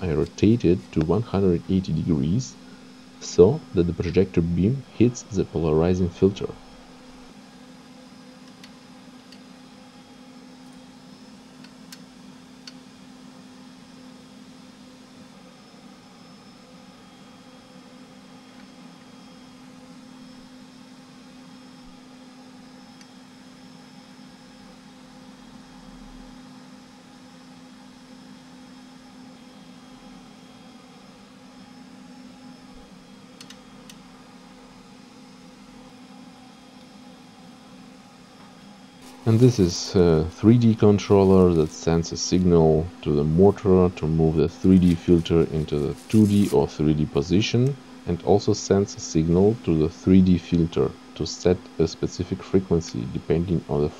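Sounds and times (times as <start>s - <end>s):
projector cooling fans humming: 0.0s - 53.9s.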